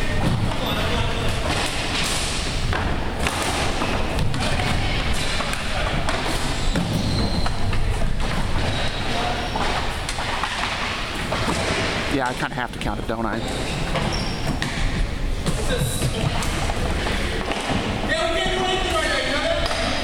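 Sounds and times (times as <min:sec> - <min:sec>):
players' voices: 0:00.0 - 0:14.2, 0:14.8 - 0:20.0.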